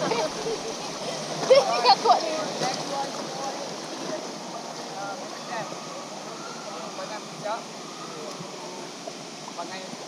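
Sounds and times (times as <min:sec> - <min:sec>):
river water rushing: 0:00.0 - 0:10.0.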